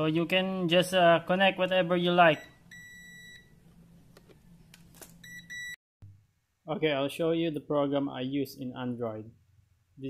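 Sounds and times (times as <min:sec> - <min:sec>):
multimeter continuity beep: 0:02.4 - 0:03.5, 0:05.2 - 0:05.8.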